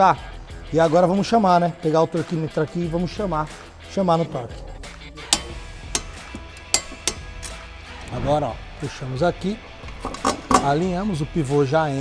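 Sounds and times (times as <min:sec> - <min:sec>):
background music: 0:00.0 - 0:12.0
metallic clinks of tools: 0:04.5 - 0:07.7.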